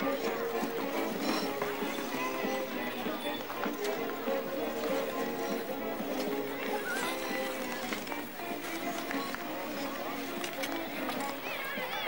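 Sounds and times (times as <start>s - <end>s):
babble of voices: 0.0s - 12.0s
skate blades scraping ice: 0.0s - 12.0s.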